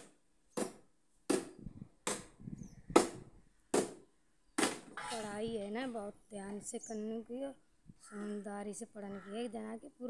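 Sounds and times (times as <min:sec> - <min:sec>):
sharp knocks: 0:00.0 - 0:04.0, 0:04.6 - 0:05.0.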